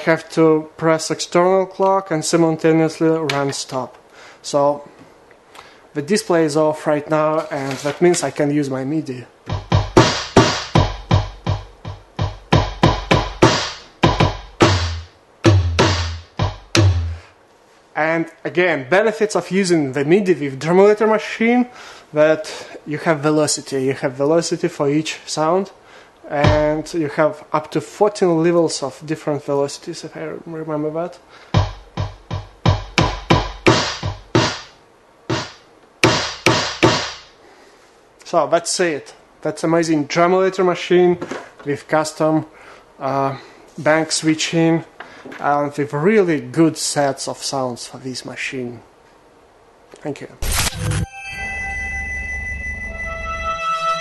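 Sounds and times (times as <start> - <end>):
drum machine hits: 9.4 - 17.3, 26.4 - 27.0, 31.6 - 37.3
bass drum hits: 9.5 - 17.3, 26.4 - 26.9, 31.6 - 34.7.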